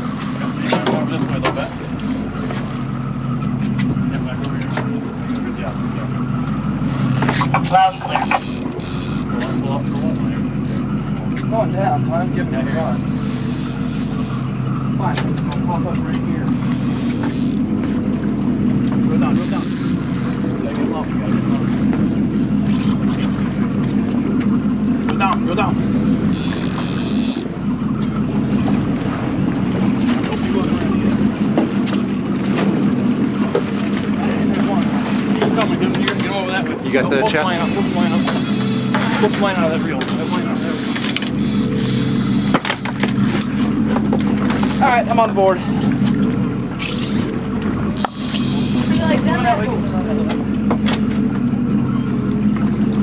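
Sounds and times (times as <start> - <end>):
boat engine humming: 0.0 - 53.0
water noise: 0.0 - 53.0
wind: 0.0 - 53.0.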